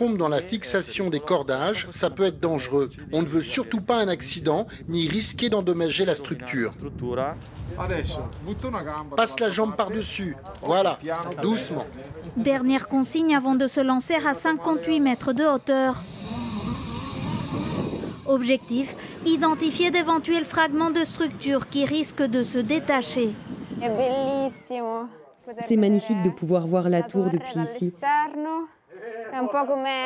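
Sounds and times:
wind rumble on microphone: 1.6 - 11.0, 16.0 - 24.6
woman talking: 12.4 - 16.0, 18.2 - 28.7.

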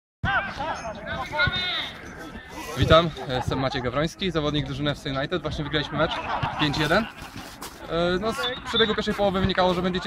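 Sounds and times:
people talking: 0.3 - 7.2, 7.8 - 10.0.

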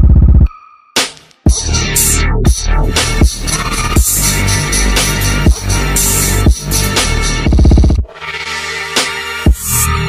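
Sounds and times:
electronic music with heavy bass: 0.0 - 10.0.

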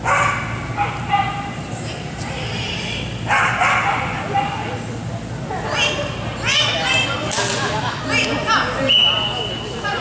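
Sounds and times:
dog barking in high-pitched yips: 0.0 - 1.5, 3.3 - 4.6.

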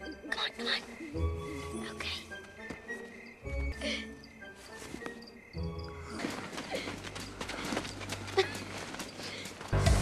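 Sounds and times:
night-time outdoor ambience: 0.0 - 10.0.

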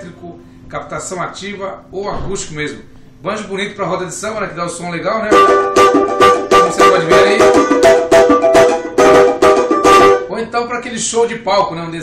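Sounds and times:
banjo strummed chords: 5.3 - 10.3.

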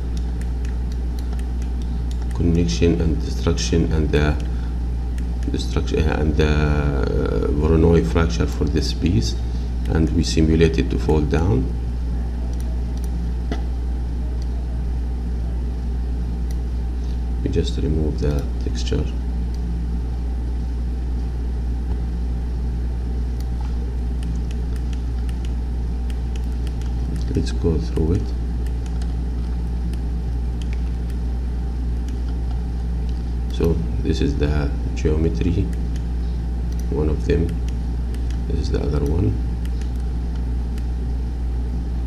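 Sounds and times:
low equipment hum: 0.0 - 42.0.

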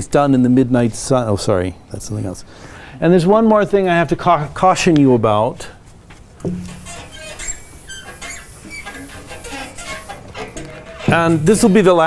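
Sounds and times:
blackboard squeaks and rubbing: 6.5 - 11.8.

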